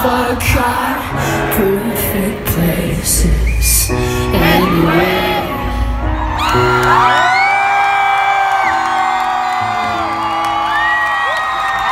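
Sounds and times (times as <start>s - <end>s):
concert crowd screaming and whooping: 3.3s - 11.9s.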